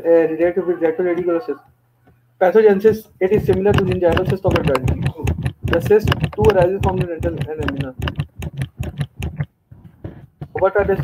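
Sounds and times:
computer keyboard keys clicking: 3.4s - 9.5s.

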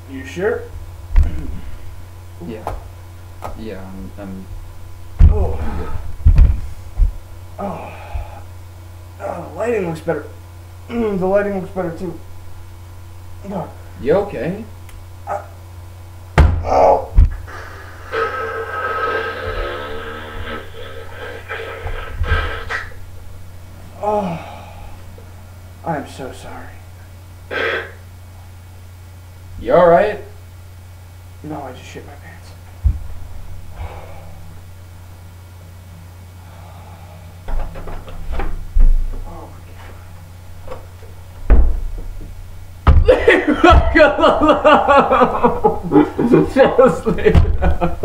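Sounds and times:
soft thump: 32.8s - 33.2s
wooden door shutting thud: 41.4s - 43.1s, 47.3s - 47.8s.

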